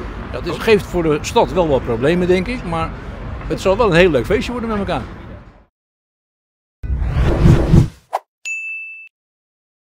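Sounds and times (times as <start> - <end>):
high bell-like ding: 8.5 - 9.1.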